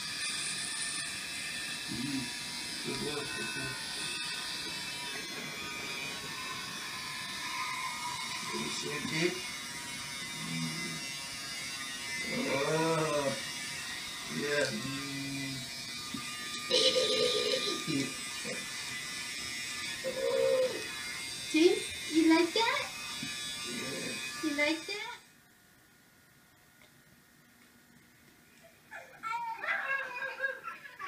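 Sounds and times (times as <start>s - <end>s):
electric hair clippers buzzing: 0.0s - 25.3s.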